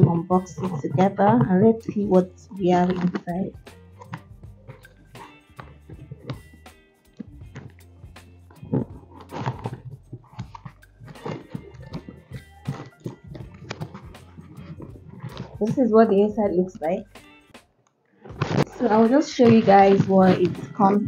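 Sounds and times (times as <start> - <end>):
quiet background music: 0.0 - 21.0.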